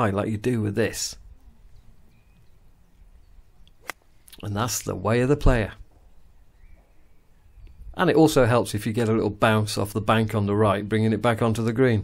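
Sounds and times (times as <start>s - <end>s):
golf club striking ball: 3.7s - 4.4s.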